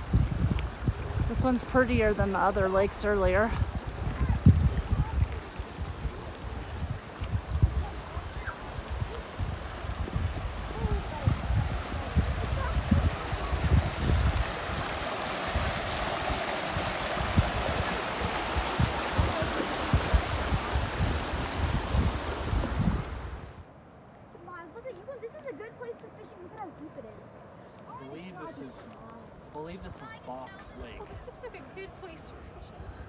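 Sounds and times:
creek running over rocks: 0.0 - 32.7.

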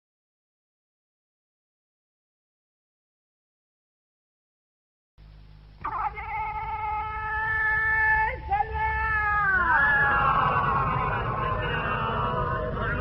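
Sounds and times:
low tape hum: 5.2 - 13.0
person chanting: 5.8 - 13.0.

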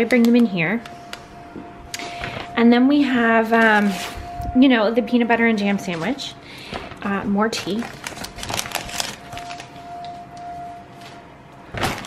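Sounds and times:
shopping bag rustling: 2.0 - 4.4, 5.2 - 12.0.

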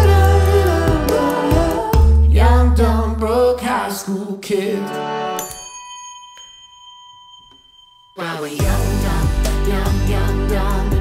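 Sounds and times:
singing bowl ringing: 5.4 - 8.6.

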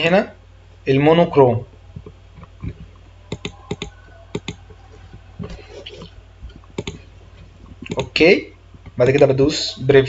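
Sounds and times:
computer mouse clicking: 2.0 - 7.1, 7.7 - 8.2.

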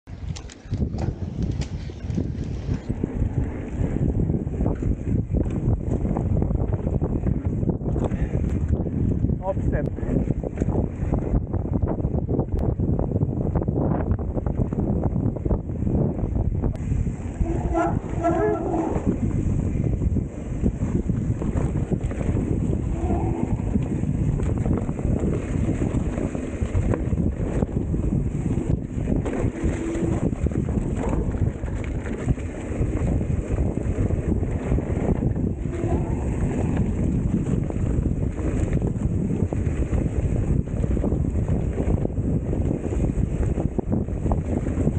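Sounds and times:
wind buffeting microphone: 0.0 - 44.9
mountain bike rattling on dirt: 0.1 - 44.9.

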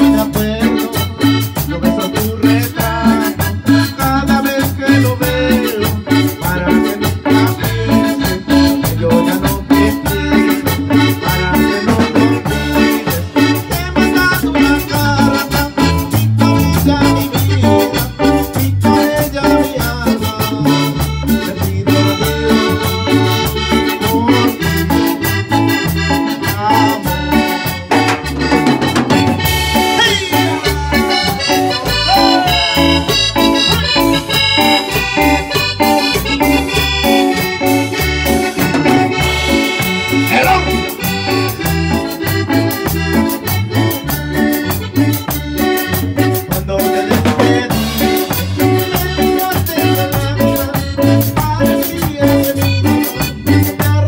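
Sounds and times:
drum kit: 0.0 - 54.0
keyboard melody: 0.0 - 54.0.

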